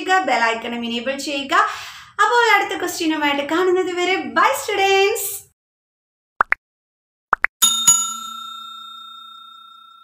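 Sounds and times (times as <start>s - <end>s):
notification bell ringing: 7.6s - 10.0s.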